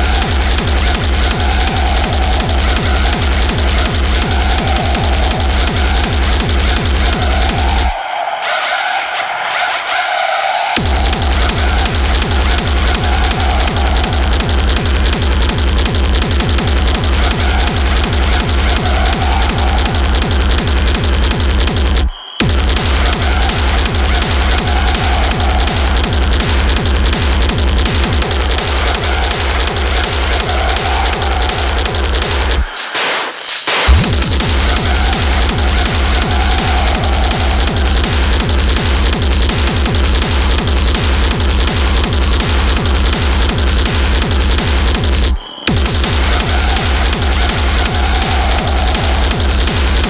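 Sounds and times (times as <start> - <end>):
heavy kick drum: 0.0 - 8.0, 10.8 - 32.8, 33.6 - 50.0
steady drone: 0.0 - 32.7, 33.9 - 50.0
dense hi-hats: 0.0 - 50.0
harsh noisy synth: 0.0 - 50.0
industrial techno music: 0.0 - 50.0.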